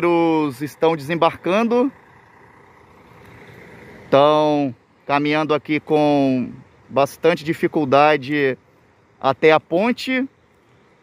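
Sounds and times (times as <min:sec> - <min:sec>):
distant vehicle engine rumble: 0:00.0 - 0:11.0
outdoor background noise: 0:00.0 - 0:11.0.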